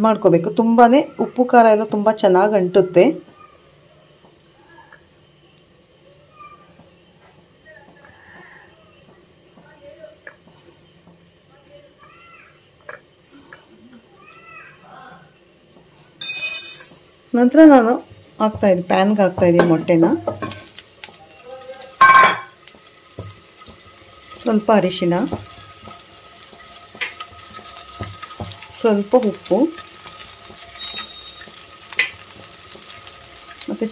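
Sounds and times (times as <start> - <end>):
eggs sizzling in a pan: 0.0 - 33.9.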